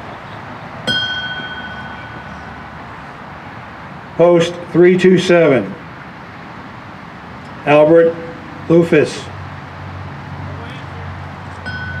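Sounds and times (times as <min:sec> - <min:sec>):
bell ringing: 0:00.9 - 0:02.6, 0:11.6 - 0:12.0.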